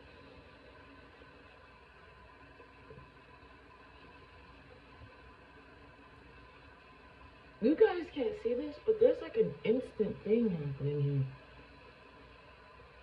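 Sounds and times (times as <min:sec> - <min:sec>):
light steady hiss: 0:00.0 - 0:13.0.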